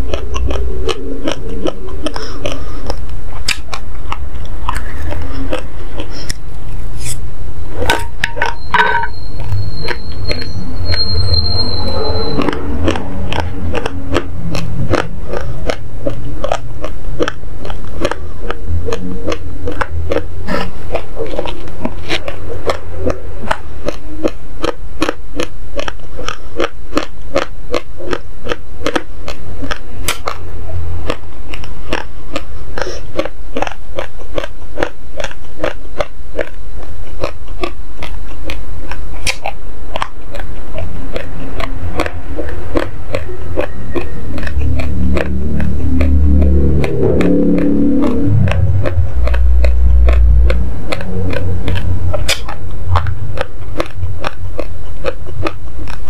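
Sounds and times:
chewing crunches of raw rice: 0.0 - 7.2, 9.4 - 56.0
low rumble: 0.0 - 24.8, 40.1 - 56.0.

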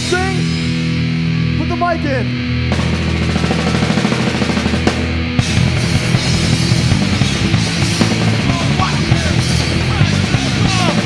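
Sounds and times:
hardcore punk band playing: 0.0 - 11.0.

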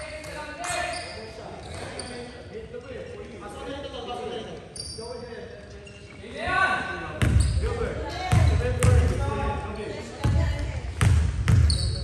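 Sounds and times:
basketball bouncing on wooden floor: 10.2 - 11.8.

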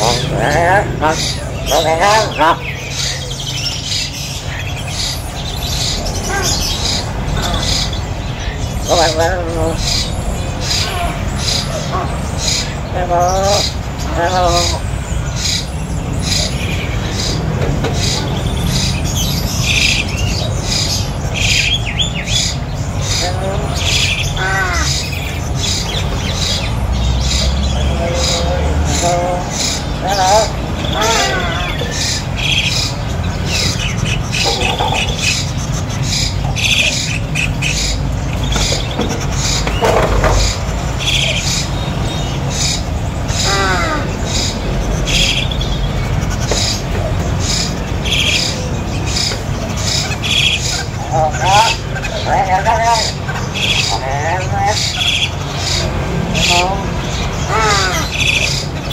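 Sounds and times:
bird squawk: 0.0 - 58.9
caged birds chirping: 0.0 - 58.9.

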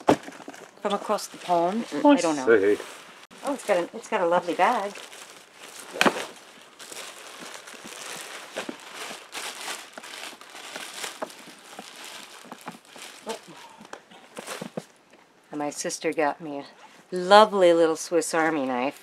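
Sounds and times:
plastic and fabric bag rustling: 0.0 - 15.0.

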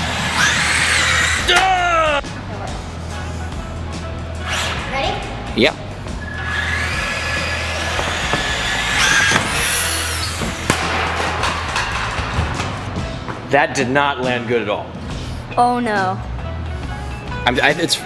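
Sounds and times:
rc car electric motor whining: 0.0 - 1.5, 6.2 - 10.4.

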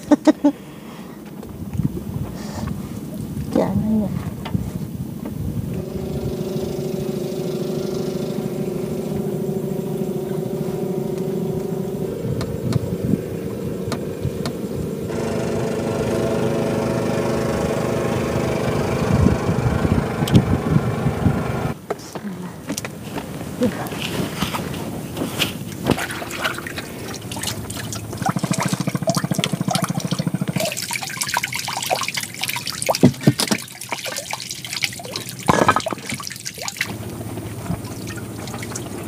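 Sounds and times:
engine running: 4.4 - 39.0.

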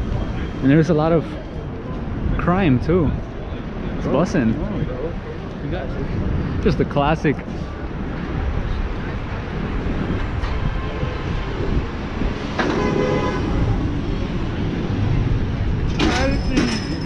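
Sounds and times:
passers-by voices: 0.0 - 17.0
passing traffic rumble: 0.0 - 17.0.

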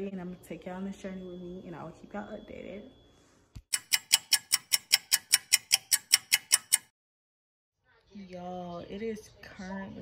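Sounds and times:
fast clock ticking: 3.7 - 6.9.

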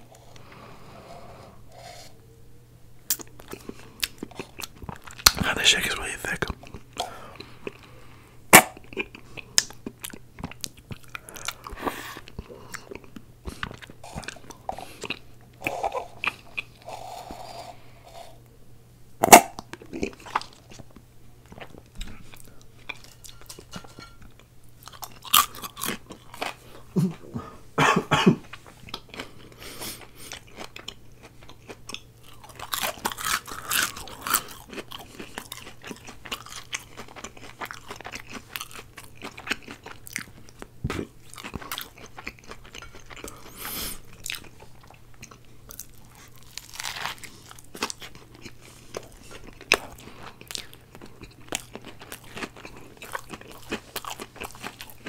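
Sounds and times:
chewing and crunching food: 3.0 - 18.5, 19.2 - 27.6, 28.4 - 55.0.

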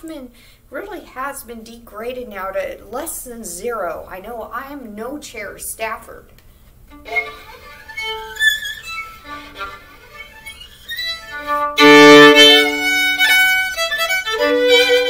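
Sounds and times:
violin bowed in held notes: 7.0 - 15.0.

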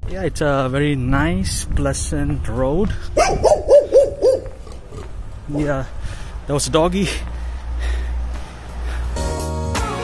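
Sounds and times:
dog yapping: 3.2 - 4.7.

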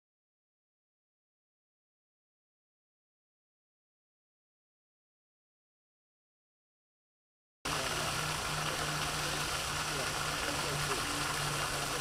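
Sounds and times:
fountain water splashing: 7.7 - 12.0
low steady hum: 7.7 - 12.0.

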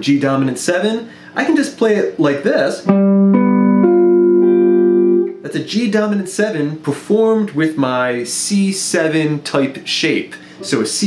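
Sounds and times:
clean electric guitar picking a chord: 2.9 - 5.4.

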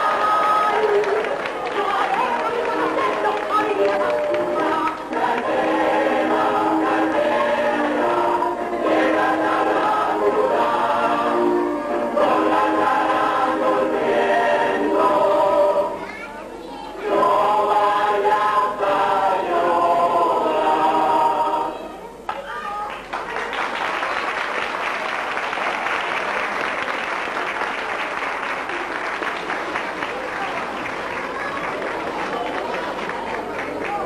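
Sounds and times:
group of voices singing: 0.0 - 16.0, 17.0 - 22.0.

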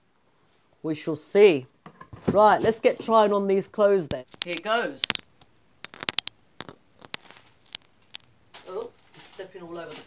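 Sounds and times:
plastic wrappers crinkling underfoot: 4.2 - 10.0.

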